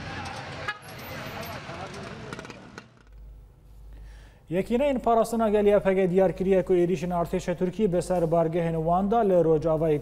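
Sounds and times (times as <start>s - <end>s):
street and vehicle noise: 0.0s - 10.0s.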